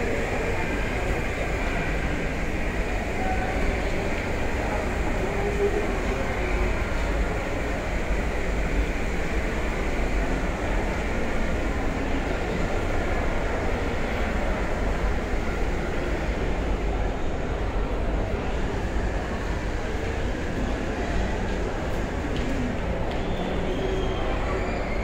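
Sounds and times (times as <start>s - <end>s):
shopping mall background hum: 0.0s - 25.0s.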